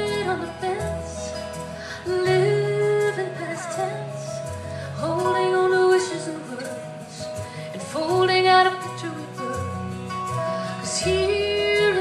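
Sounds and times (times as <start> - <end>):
bass: 0.0 - 12.0.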